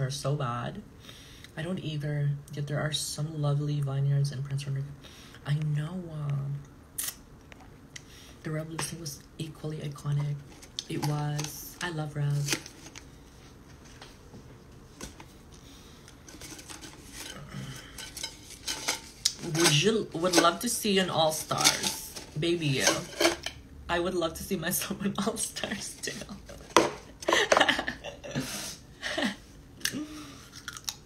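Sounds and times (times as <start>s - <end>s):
chip can rustling and clattering: 16.2s - 23.6s
snack crunching: 29.8s - 31.0s.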